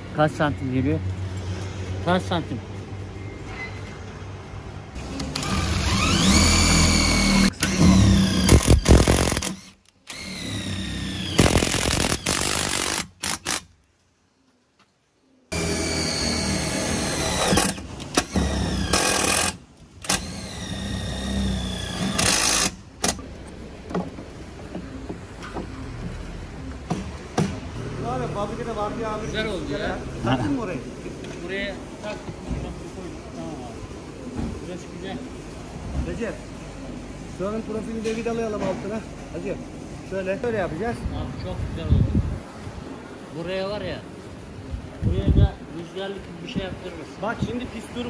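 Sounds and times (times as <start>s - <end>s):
electric power tool whining: 5.0s - 13.6s, 15.5s - 22.8s.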